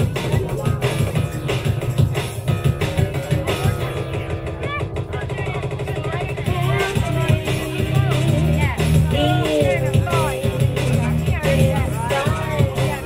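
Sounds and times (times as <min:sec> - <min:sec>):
live band playing: 0:00.0 - 0:05.2, 0:06.4 - 0:13.0
women singing: 0:06.4 - 0:13.0.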